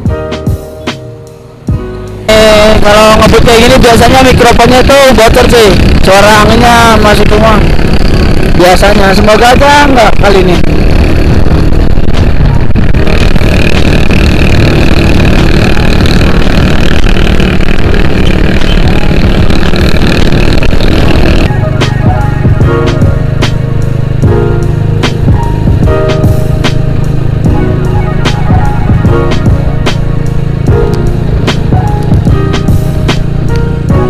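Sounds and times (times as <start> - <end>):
background music with steady beat: 0.0 - 3.4, 21.5 - 34.0
motorcycle engine running: 1.5 - 34.0
wind noise on microphone: 10.1 - 21.5.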